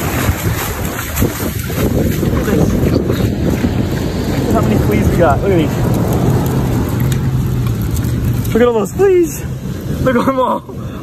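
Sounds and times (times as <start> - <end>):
surf rushing: 0.0 - 11.0
wind buffeting microphone: 0.0 - 11.0.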